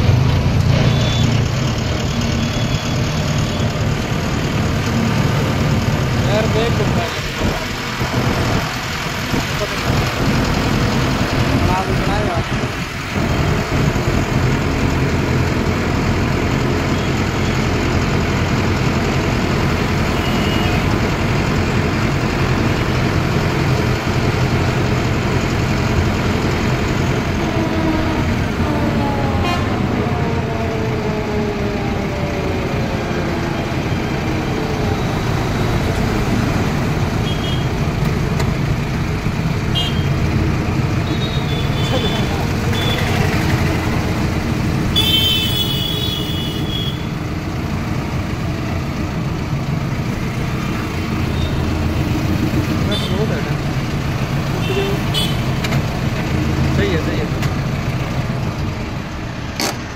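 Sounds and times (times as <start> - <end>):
tractor diesel engine: 0.0 - 59.9
traffic horn beeps: 0.8 - 1.4, 2.1 - 3.8, 20.1 - 20.9, 37.2 - 37.8, 39.7 - 40.2, 41.0 - 43.4, 44.9 - 47.2, 51.3 - 51.7, 54.6 - 55.6
vehicle horn: 20.2 - 20.9, 29.4 - 29.8, 37.2 - 37.8, 39.7 - 40.1, 41.0 - 43.3, 44.9 - 47.2, 54.6 - 55.5.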